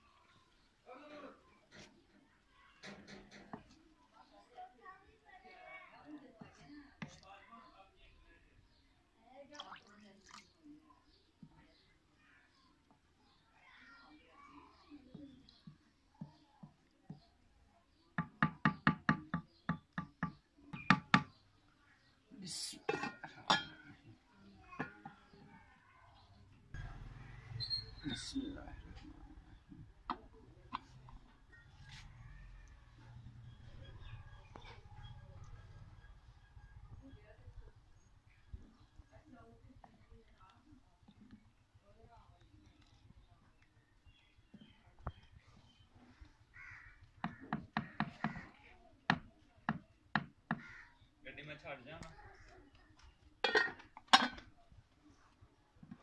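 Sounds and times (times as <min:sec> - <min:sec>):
wooden spoon knocking on pot: 0:18.2 - 0:21.3, 0:47.2 - 0:50.7
crow cawing: 0:46.5 - 0:48.6, 0:50.5 - 0:51.0.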